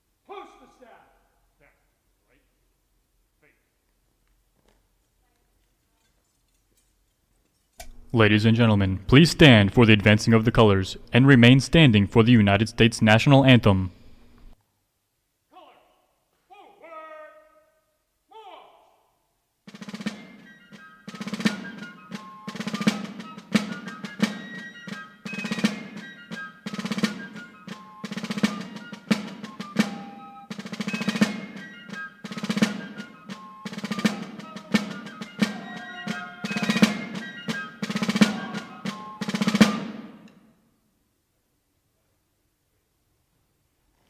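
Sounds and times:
marching snare and bass drums: 19.7 - 40.2
high fife melody: 19.8 - 40.2.

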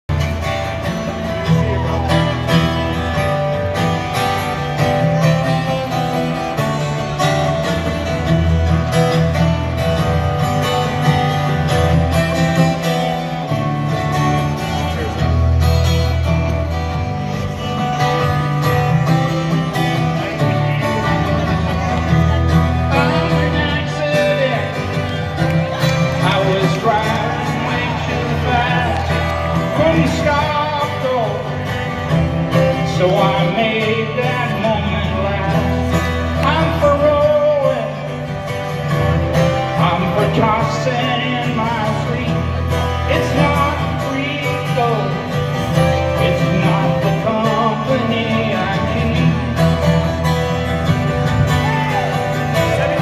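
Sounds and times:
acoustic guitar strumming: 0.1 - 53.0.

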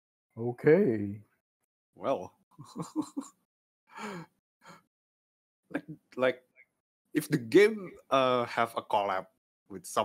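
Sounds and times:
person laughing: 2.6 - 3.4
breathy sigh: 3.9 - 4.8.

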